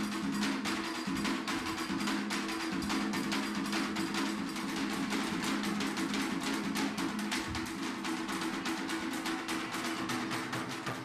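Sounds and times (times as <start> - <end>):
drum and percussion music: 0.0 - 11.0.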